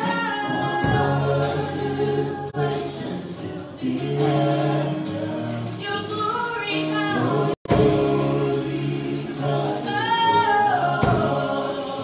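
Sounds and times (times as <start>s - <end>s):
gospel choir singing in harmony: 0.0s - 12.0s
keyboard accompaniment: 0.0s - 12.0s.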